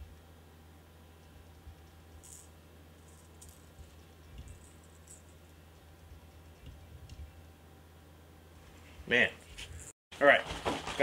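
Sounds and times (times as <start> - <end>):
low steady hum: 0.0 - 9.9.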